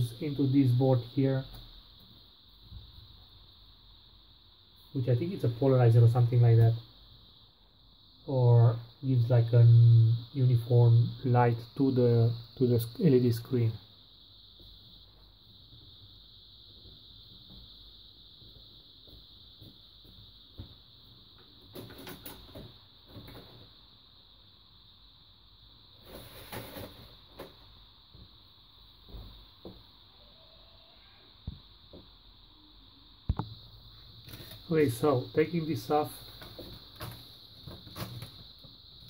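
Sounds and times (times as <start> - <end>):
faint steady hiss: 0.0 - 39.0
plastic sheet scraping and rustling: 26.0 - 27.2.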